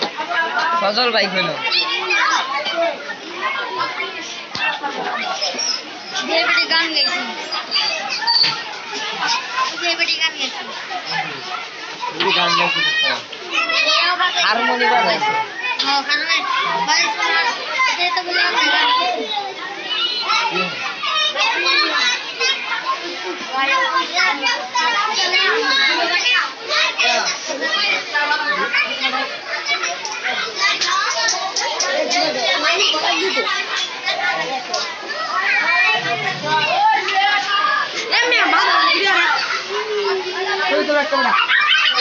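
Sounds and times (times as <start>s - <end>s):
children chattering: 0.0s - 42.0s.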